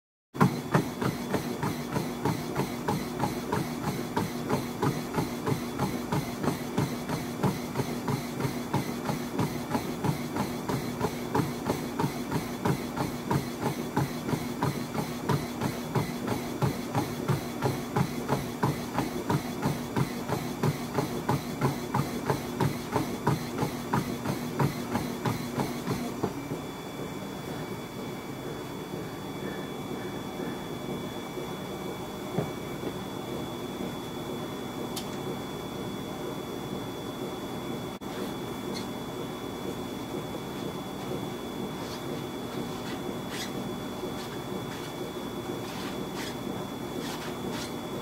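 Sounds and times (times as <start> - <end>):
running footfalls on treadmill: 0.4 - 29.1, 38.0 - 48.0
treadmill motor hum: 0.4 - 48.0.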